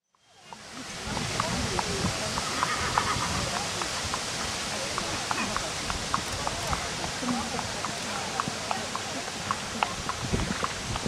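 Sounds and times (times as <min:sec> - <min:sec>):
background voices: 0:00.4 - 0:11.0
horse hoofbeats on sand: 0:00.4 - 0:11.0.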